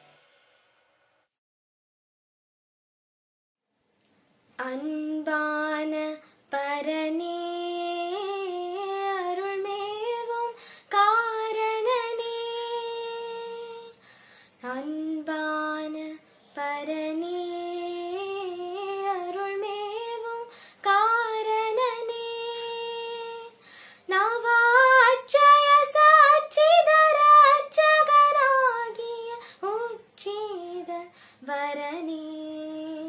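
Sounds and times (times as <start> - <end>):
girl singing unaccompanied: 4.6 - 14.0, 14.6 - 33.0
singer breathing: 10.6 - 10.9, 14.0 - 14.6, 20.5 - 20.8, 23.6 - 24.1, 31.1 - 31.4.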